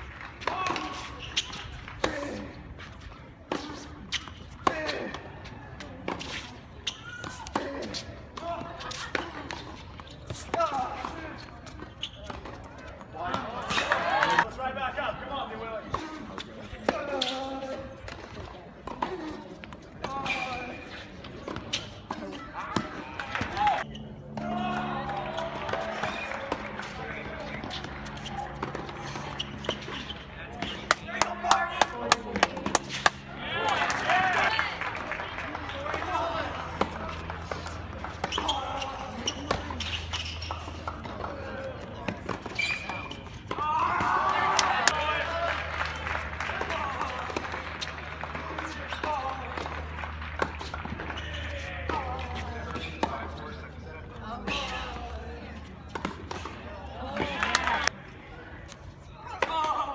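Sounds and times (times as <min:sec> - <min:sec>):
spectators talking: 0:00.4 - 0:59.9.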